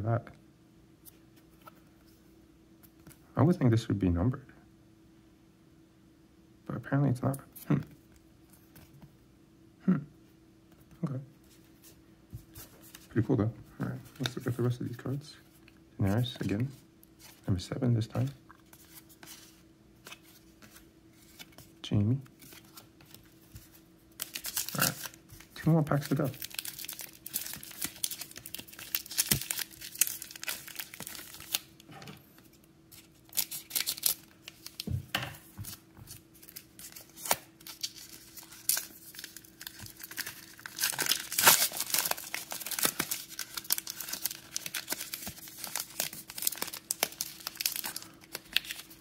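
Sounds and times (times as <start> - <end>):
foil pack tearing and crinkling: 24.2 - 31.7, 33.2 - 34.8, 36.4 - 49.0.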